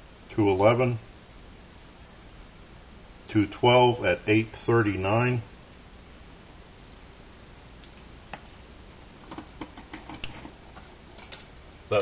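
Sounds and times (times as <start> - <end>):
kettle boiling hiss: 0.0 - 12.0.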